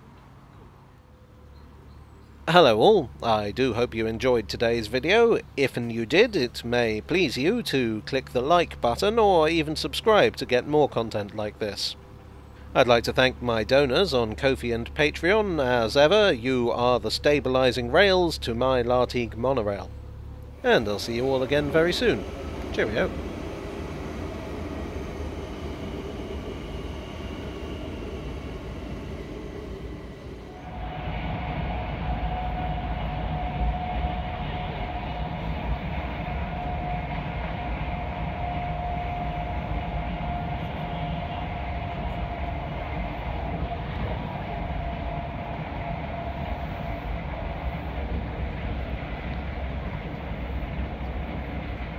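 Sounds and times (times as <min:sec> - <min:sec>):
rumble inside moving train: 0:00.0 - 0:51.9
train passing over bridge: 0:00.0 - 0:51.9
steady whine: 0:02.5 - 0:51.9.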